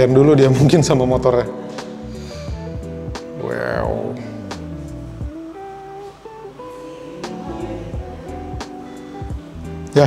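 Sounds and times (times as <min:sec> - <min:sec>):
plucked guitar melody: 0:00.0 - 0:10.0.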